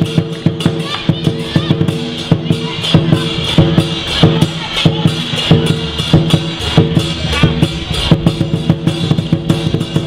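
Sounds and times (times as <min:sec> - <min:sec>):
cymbals clashing: 0:00.0 - 0:10.0
large drum beaten quickly: 0:00.0 - 0:10.0.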